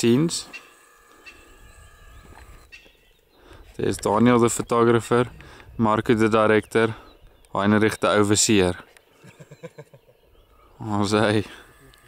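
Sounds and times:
faint distant birds calling: 0.0s - 12.0s.

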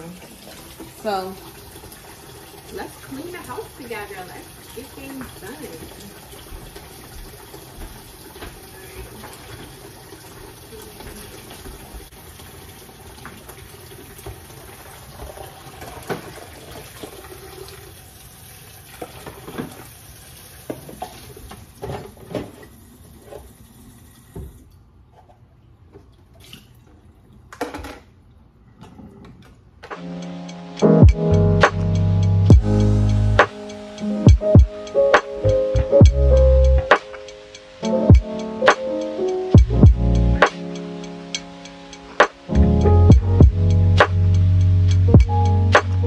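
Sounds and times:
tap running into sink: 5.0s - 12.0s.

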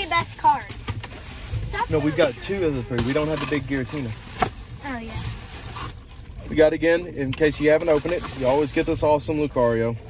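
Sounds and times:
low car cabin hum: 0.0s - 10.0s.

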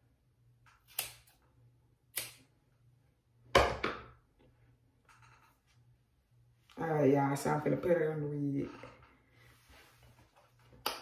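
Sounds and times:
scissors snipping: 0.8s - 1.4s, 2.1s - 2.4s.

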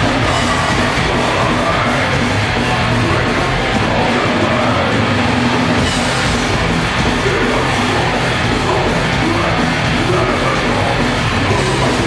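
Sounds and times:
bass: 0.0s - 12.0s
distorted electric guitars: 0.0s - 12.0s
drums: 0.0s - 12.0s.

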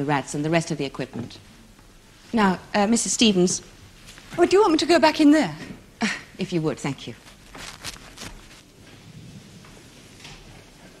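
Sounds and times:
faint footsteps: 7.2s - 11.0s.

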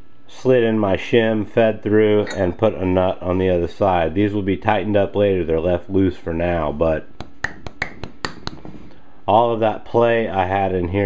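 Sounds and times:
sharp clicks and taps: 7.2s - 8.8s.

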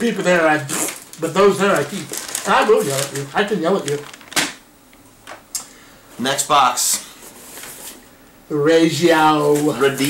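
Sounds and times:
plastic packaging clack: 0.7s - 4.6s.

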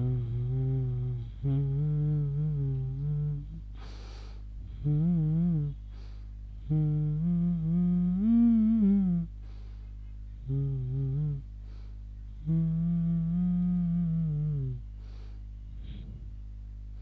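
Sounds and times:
man humming: 0.0s - 4.0s, 4.6s - 6.0s, 6.6s - 9.5s, 10.4s - 15.0s
short breaths: 3.7s - 4.8s, 5.8s - 6.4s, 9.4s - 10.0s, 11.6s - 12.1s, 15.0s - 16.4s.

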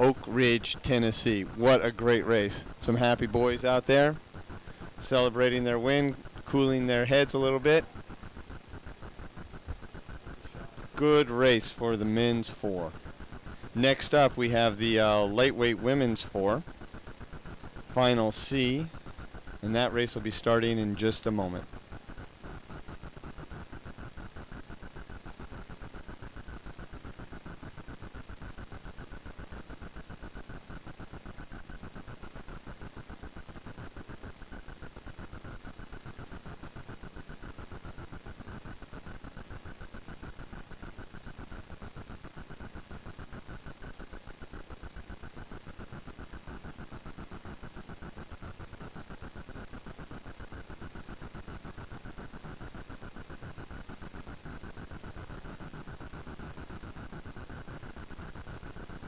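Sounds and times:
static and hiss: 0.0s - 59.0s
thin high whine: 0.0s - 59.0s.

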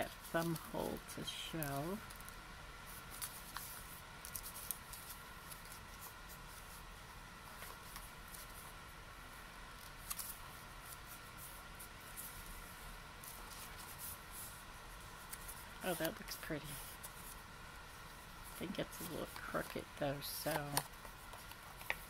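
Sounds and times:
paper rustling and crinkling: 0.0s - 1.0s, 1.7s - 8.7s, 9.7s - 12.6s, 13.2s - 22.0s
faint steady hum: 0.0s - 22.0s.

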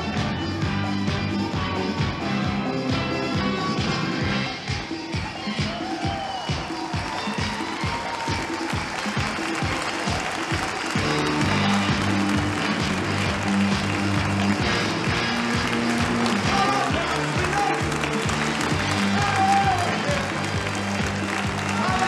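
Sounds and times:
live disco music: 0.0s - 22.0s
audience applause: 5.2s - 22.0s.

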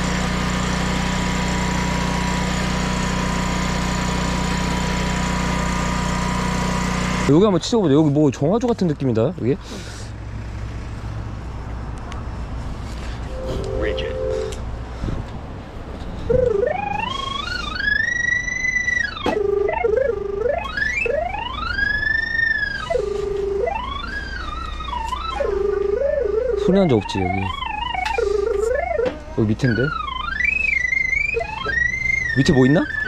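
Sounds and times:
gliding electronic signal tone: 13.3s - 14.6s, 16.3s - 33.0s
low steady hum: 13.3s - 14.6s.

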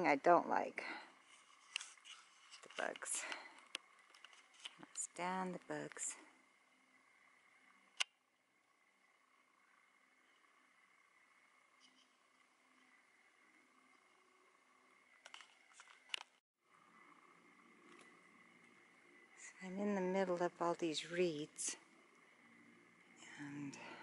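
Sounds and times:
faint background hiss: 0.0s - 24.0s.

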